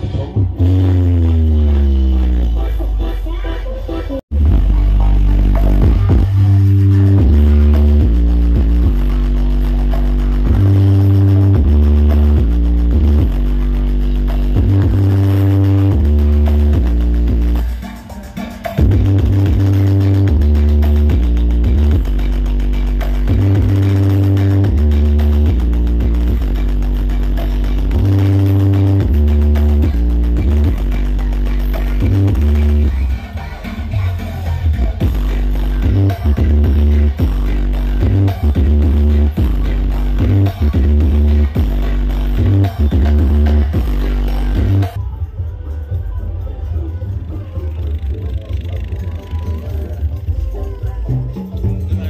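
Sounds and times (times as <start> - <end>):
heavy booming bass line: 0.0 - 3.2, 4.3 - 17.9, 18.8 - 33.3, 34.6 - 45.0
loud electronic dance music: 0.0 - 52.0.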